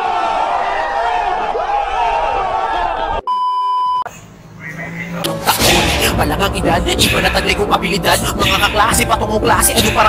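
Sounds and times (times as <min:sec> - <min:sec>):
people shouting: 0:00.0 - 0:03.2
electronic beep tone: 0:03.3 - 0:04.1.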